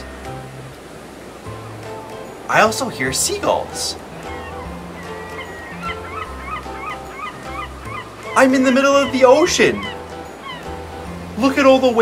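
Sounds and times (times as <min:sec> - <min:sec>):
background music: 0:00.0 - 0:12.0
seagull calls: 0:04.1 - 0:10.8.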